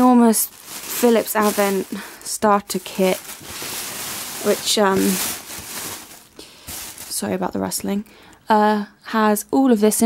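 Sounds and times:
plastic bag rustling: 0:00.0 - 0:07.9.

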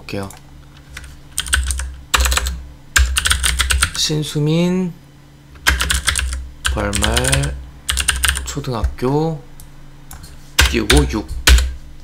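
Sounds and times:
computer keyboard typing: 0:00.8 - 0:04.0, 0:05.6 - 0:09.0, 0:10.6 - 0:11.8.

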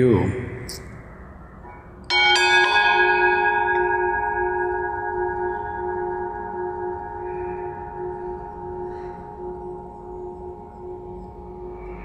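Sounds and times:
bell ringing: 0:02.1 - 0:12.0.

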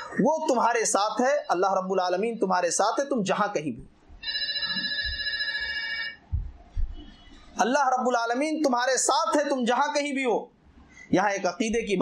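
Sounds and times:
high-pitched electronic tone: 0:04.2 - 0:06.1
low thumps: 0:06.3 - 0:07.1.

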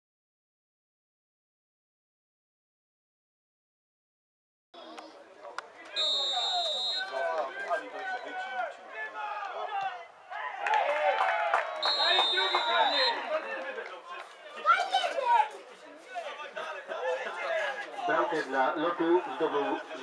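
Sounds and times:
players and spectators shouting: 0:04.9 - 0:20.0
referee's whistle blast: 0:05.9 - 0:07.3, 0:11.8 - 0:13.2.

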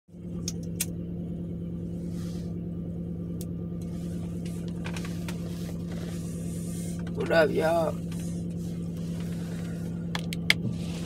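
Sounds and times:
car engine hum inside cabin: 0:00.1 - 0:11.0.

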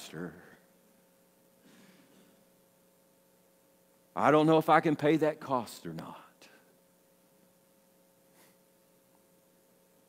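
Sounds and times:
faint steady hum: 0:00.0 - 0:10.0
man speaking: 0:04.2 - 0:06.6.

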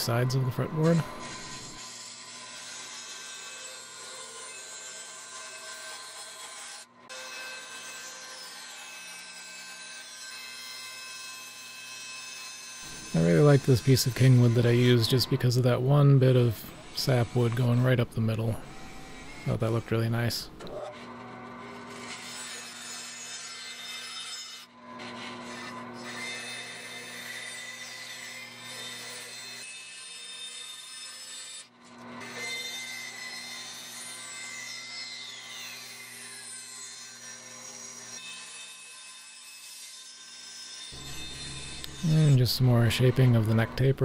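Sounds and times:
bandsaw cutting wood: 0:00.0 - 0:44.0.

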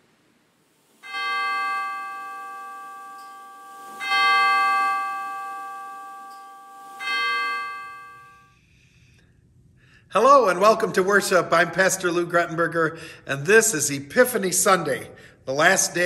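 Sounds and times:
bell ringing: 0:01.0 - 0:08.6.

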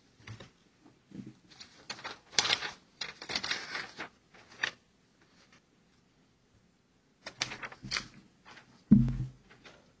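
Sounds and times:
paper rustling: 0:00.2 - 0:05.7, 0:07.2 - 0:10.0
paper crackle: 0:01.5 - 0:05.6, 0:07.2 - 0:08.8.

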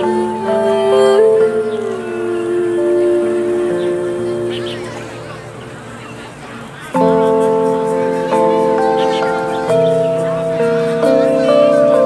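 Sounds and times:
acoustic guitar: 0:00.0 - 0:12.0
sustained keyboard chord: 0:00.0 - 0:12.0.

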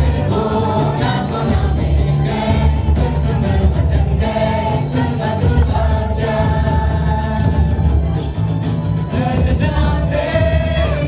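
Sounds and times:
band with steady beat: 0:00.0 - 0:11.0
voices singing together: 0:00.0 - 0:11.0.

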